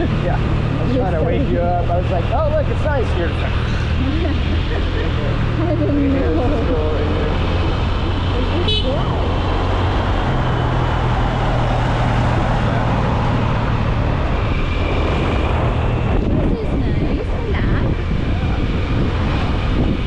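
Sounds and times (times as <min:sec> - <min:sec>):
car driving on highway: 0:00.0 - 0:20.0
high-pitched car horn toot: 0:08.6 - 0:09.0.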